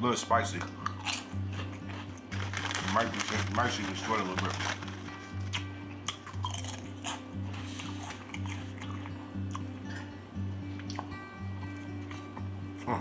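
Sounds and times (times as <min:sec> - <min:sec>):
music with low bass line: 0:00.6 - 0:13.0
person chewing: 0:00.8 - 0:02.4, 0:05.4 - 0:09.7, 0:10.8 - 0:11.2.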